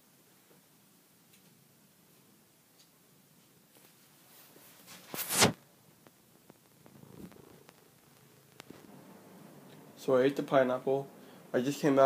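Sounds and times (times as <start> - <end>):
cat purring: 5.9 - 10.4.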